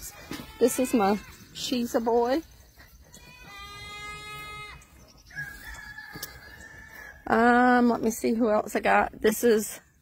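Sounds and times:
rooster crowing: 5.3 - 7.2.

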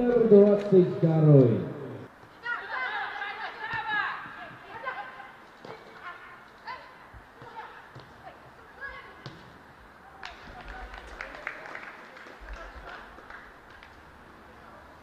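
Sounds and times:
ball being kicked: 9.0 - 9.6.

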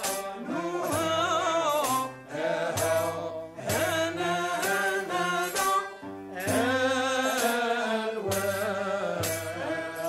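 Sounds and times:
low instrumental accompaniment: 0.0 - 10.0
men singing in unison: 0.0 - 10.0
sharp percussive strokes: 0.0 - 10.0.

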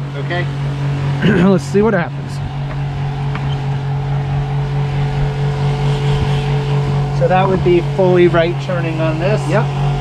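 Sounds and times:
electric pumps humming: 0.0 - 10.0.

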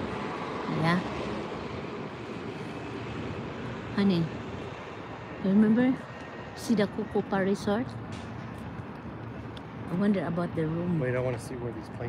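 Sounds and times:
wind-like outdoor rush: 0.0 - 12.0.

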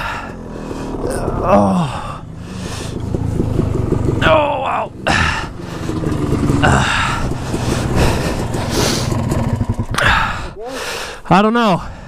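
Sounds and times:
dirt bike engine idling: 0.0 - 10.8
man groaning in pain: 1.0 - 2.3, 4.2 - 5.9, 6.5 - 8.5.

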